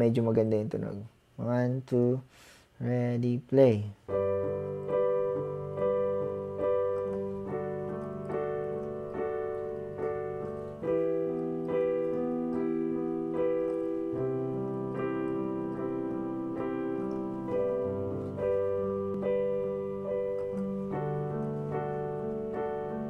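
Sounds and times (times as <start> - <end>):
electronic keyboard piano chords: 4.0 - 23.0.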